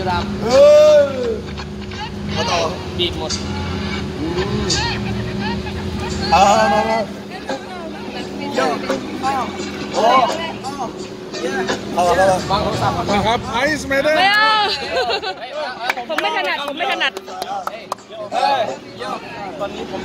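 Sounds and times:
low mechanical hum: 0.0s - 15.4s
men talking and calling out: 0.0s - 20.0s.

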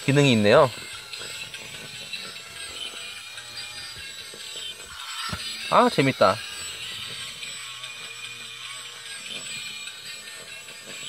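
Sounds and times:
small toy motor whirring: 0.0s - 11.0s
toy electronic tune: 0.0s - 11.0s.

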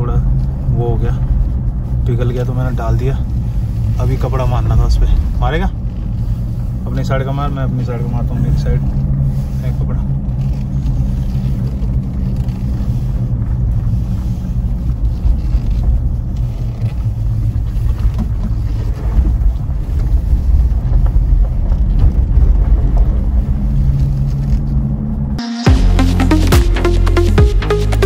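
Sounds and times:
car engine and tyre drone: 0.0s - 28.0s.

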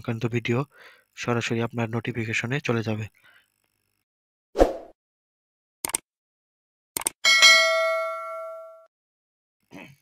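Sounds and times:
quick clicks: 5.8s - 6.1s, 7.0s - 7.2s
notification bell ding: 7.3s - 8.9s.

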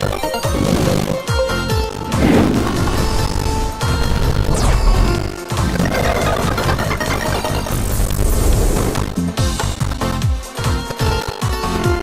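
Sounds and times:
game music: 0.0s - 12.0s.

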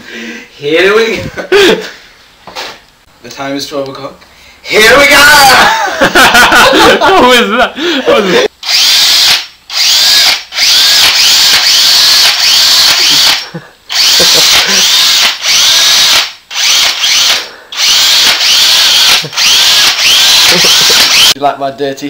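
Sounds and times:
cordless power drill running: 8.6s - 21.4s.

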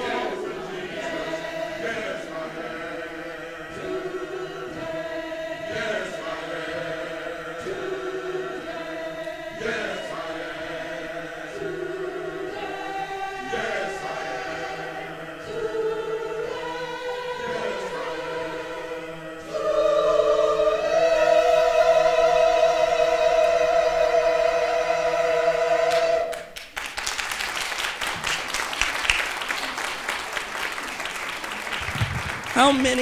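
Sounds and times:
mixed choir singing: 0.0s - 26.6s.

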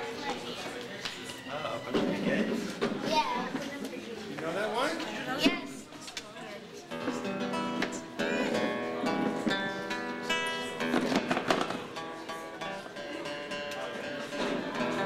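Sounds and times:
acoustic guitar playing: 6.9s - 15.0s.

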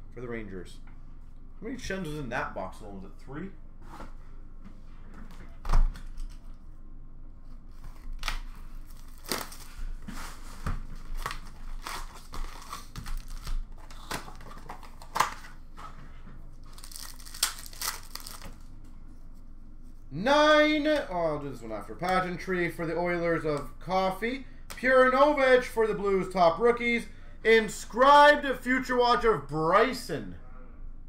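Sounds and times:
foil wrappers tearing: 8.0s - 10.4s, 11.0s - 15.6s, 16.6s - 18.6s.

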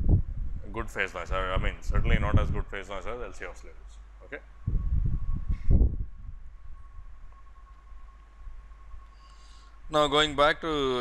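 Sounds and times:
faint low hum: 0.0s - 11.0s
thin high tone: 5.2s - 11.0s.

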